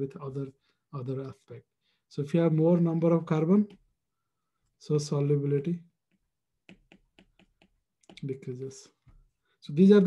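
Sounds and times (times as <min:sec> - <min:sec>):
stylus tapping on tablet screen: 0:03.5 - 0:04.0, 0:06.0 - 0:08.4.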